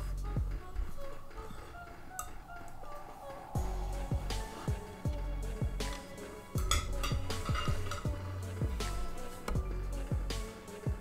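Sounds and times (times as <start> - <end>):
background music with a beat: 0.0 - 11.0
cutlery clinking on a plate: 6.6 - 8.2.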